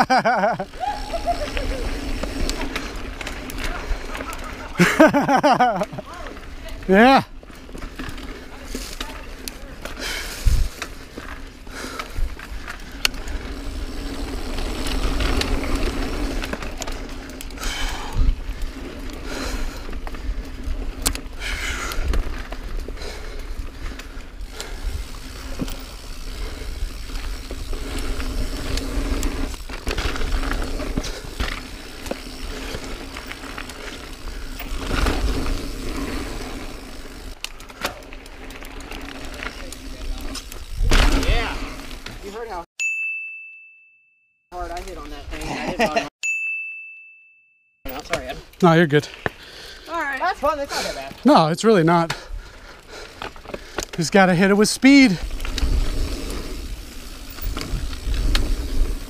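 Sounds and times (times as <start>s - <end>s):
bike rattling: 0.0s - 42.7s, 44.5s - 46.1s, 47.9s - 59.0s
bike tyres rolling on dirt: 0.0s - 42.7s, 44.5s - 46.1s, 47.9s - 59.0s.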